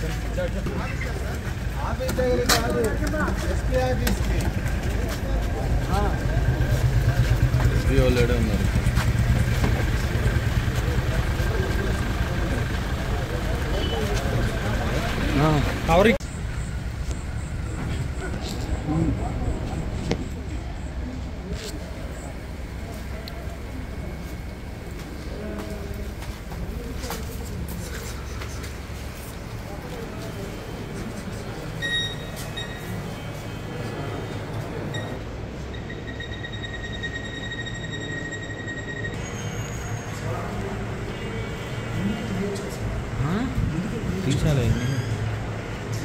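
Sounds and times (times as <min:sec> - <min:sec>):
vehicle engine idling: 0:00.0 - 0:37.5
people's voices: 0:00.0 - 0:46.0
footsteps and scuffing: 0:24.3 - 0:30.4.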